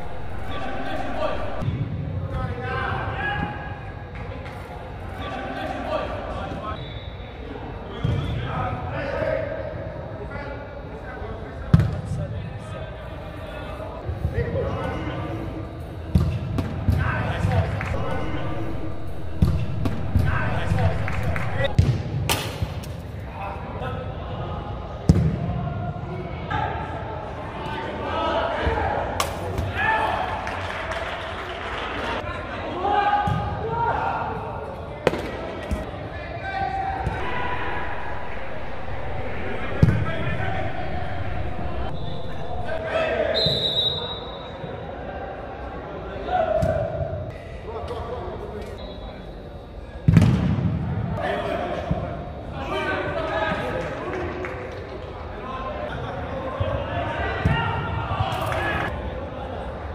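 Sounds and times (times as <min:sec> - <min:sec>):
players shouting: 0:00.0 - 0:01.7, 0:16.8 - 0:21.8, 0:32.2 - 0:45.1.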